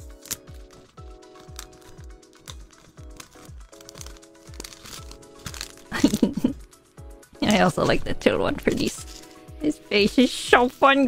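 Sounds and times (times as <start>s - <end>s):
plastic bags crinkling: 0.0s - 6.6s
background music with kick drum: 0.0s - 11.0s.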